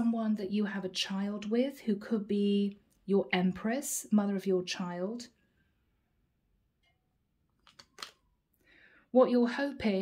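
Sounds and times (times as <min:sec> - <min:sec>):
cards being handled: 0:07.6 - 0:08.2.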